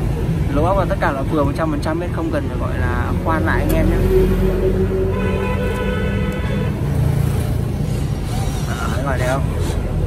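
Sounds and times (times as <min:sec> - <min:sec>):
held pitched tone: 0:03.8 - 0:06.2.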